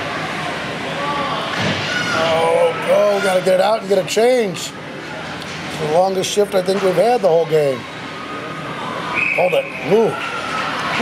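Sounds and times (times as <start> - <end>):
ice hockey game noise: 0.0 - 11.0.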